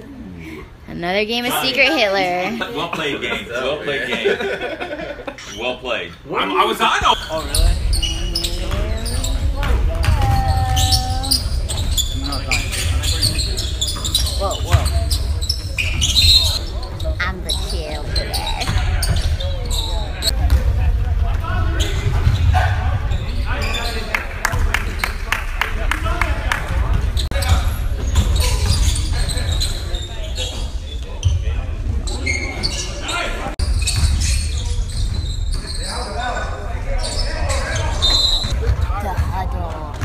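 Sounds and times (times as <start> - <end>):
players' voices echoing: 0.0 - 27.9, 38.5 - 40.0.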